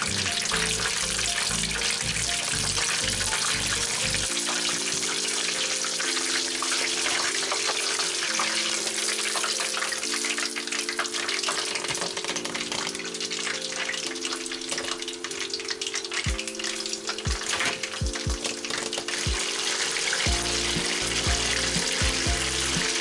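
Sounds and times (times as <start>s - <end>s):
background music: 0.0s - 23.0s
chicken deep-frying in oil: 0.0s - 23.0s.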